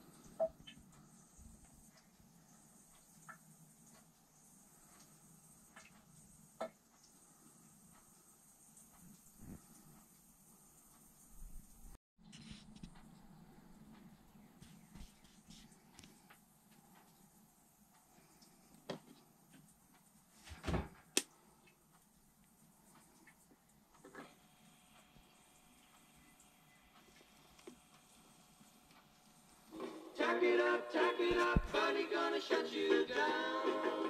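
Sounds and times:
faint steady hum: 0.0s - 34.0s
record playing music: 26.0s - 34.0s.

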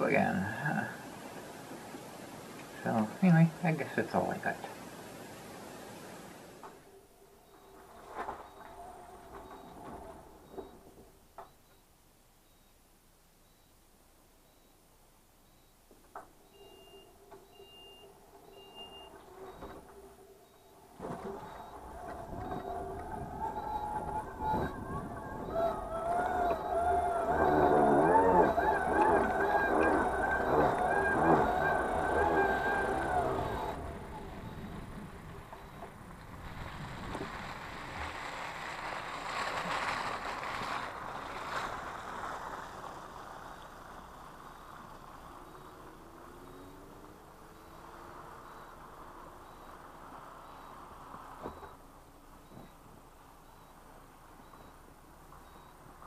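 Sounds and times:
electric scooter motor whining: 6.7s - 11.0s, 16.4s - 51.8s
faint repeating beep: 9.4s - 9.8s, 10.4s - 14.8s, 15.4s - 15.8s, 16.4s - 19.8s, 20.4s - 20.8s, 21.4s - 22.8s, 23.4s - 33.8s, 35.5s - 35.9s, 45.5s - 46.9s, 47.5s - 48.8s, 49.4s - 49.8s, 50.4s - 50.9s, 51.5s - 51.8s, 52.4s - 54.8s, 55.4s - 55.9s
rushing hiss of tyres: 36.4s - 51.8s.

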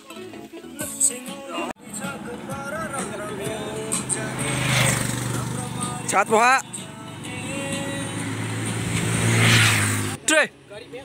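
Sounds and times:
motorcycle passing: 1.8s - 11.0s.

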